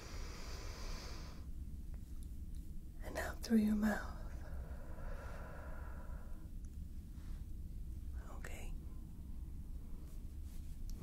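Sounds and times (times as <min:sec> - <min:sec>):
soft whisper-like breath: 0:00.0 - 0:01.5, 0:03.1 - 0:11.0.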